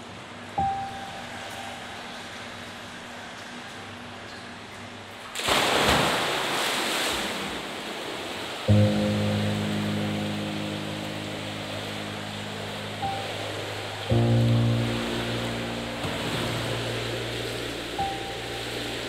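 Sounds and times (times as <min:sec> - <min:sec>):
water churning in pool: 0:05.2 - 0:19.0
deep music chords: 0:08.7 - 0:19.0.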